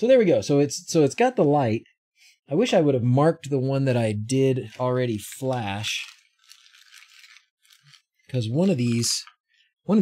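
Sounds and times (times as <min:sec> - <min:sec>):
small objects rattling: 0:04.7 - 0:09.3.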